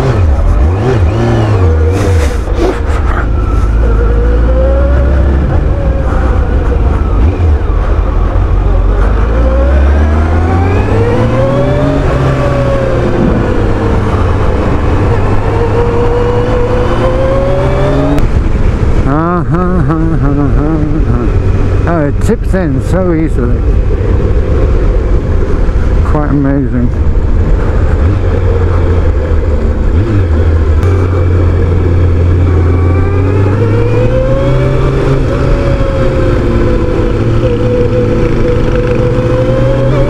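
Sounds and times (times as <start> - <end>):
motorcycle engine revving: 0.0 - 40.0.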